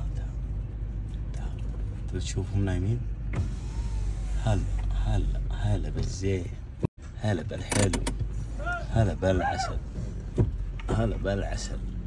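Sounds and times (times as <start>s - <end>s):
car low hum: 0.0s - 12.0s
electric window motor whine: 3.3s - 4.3s.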